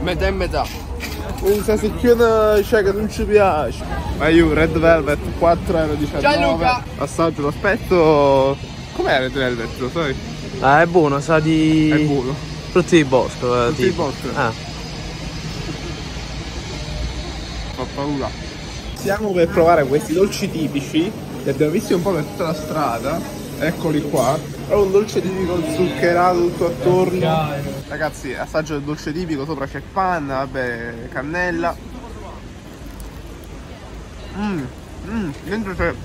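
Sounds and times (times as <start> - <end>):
even hiss: 0.0 - 36.0
faint voices: 0.0 - 36.0
traffic rumble: 0.0 - 36.0
man talking: 19.0 - 31.9.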